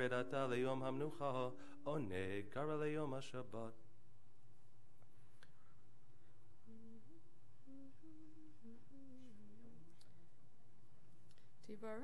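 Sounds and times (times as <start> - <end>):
person humming a slow tune: 6.6 - 9.9.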